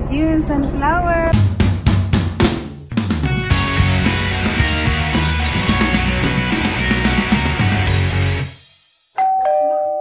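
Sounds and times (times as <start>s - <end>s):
rock music: 1.3s - 8.8s
two-note ding-dong chime: 9.2s - 10.0s.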